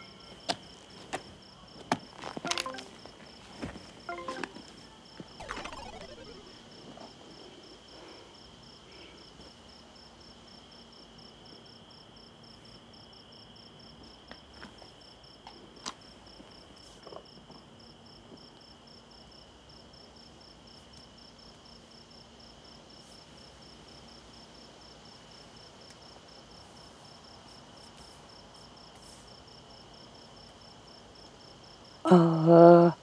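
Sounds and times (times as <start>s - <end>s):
short falling-pitch sound: 5.4s - 6.5s.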